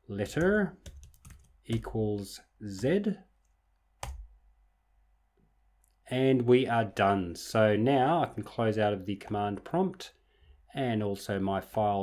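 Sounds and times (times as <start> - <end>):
laptop keystroke: 0.2 - 1.9, 4.0 - 4.3.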